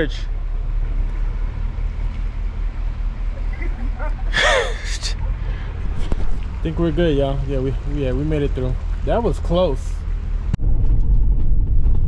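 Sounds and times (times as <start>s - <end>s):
truck engine low rumble: 0.0s - 12.0s
person crying out: 4.2s - 5.1s.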